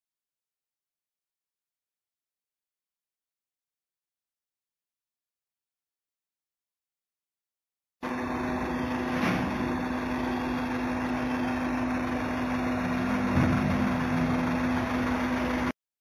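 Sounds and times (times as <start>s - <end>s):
engine idling: 8.0s - 15.8s.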